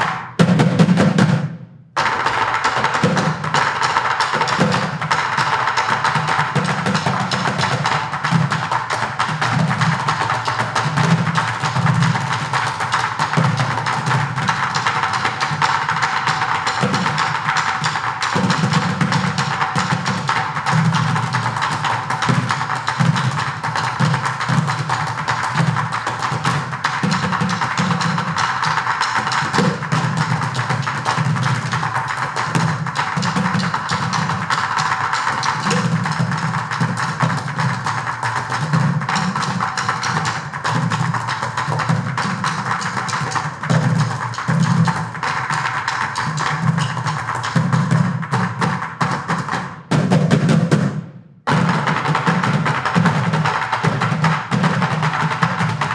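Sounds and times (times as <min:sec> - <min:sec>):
drumming on plastic buckets: 0:00.0 - 0:55.9.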